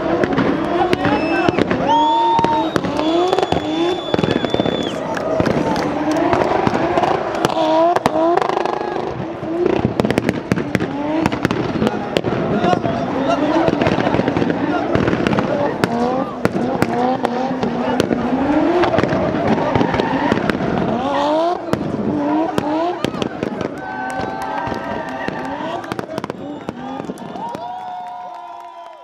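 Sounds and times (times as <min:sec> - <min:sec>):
car engine revving hard: 0:00.0 - 0:27.4
sharp exhaust pops: 0:00.1 - 0:27.6.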